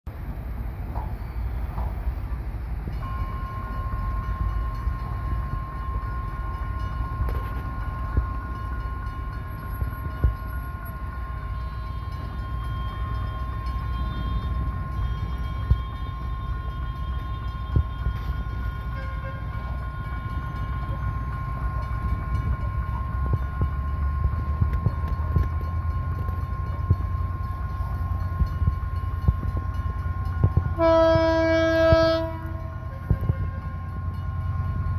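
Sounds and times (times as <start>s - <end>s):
diesel train rumble: 0.1s - 34.9s.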